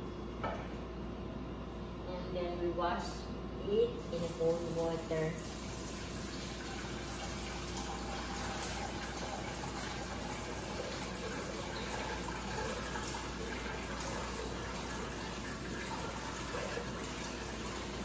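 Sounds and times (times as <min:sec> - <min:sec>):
tap water running into strainer: 0:04.0 - 0:18.0.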